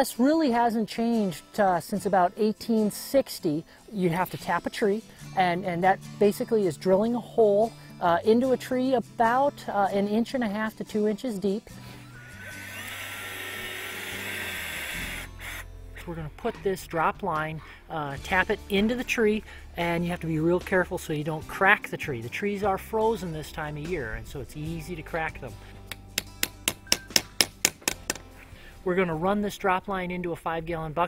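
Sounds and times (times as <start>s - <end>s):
power drill whining into wood: 12.0s - 15.7s.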